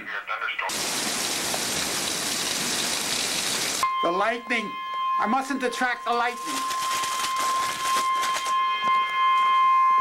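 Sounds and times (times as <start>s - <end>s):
hail and heavy rain pelting: 0.7s - 3.8s.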